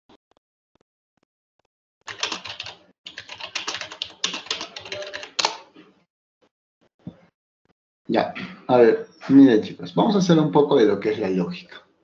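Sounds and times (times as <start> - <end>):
fast typing on keyboard: 2.1 - 5.7.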